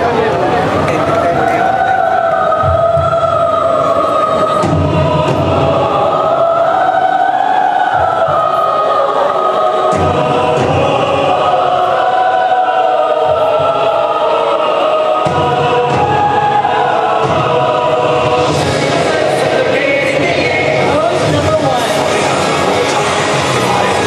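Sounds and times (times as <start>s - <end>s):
choir singing long notes: 0.0s - 24.0s
low accompaniment: 0.0s - 24.0s.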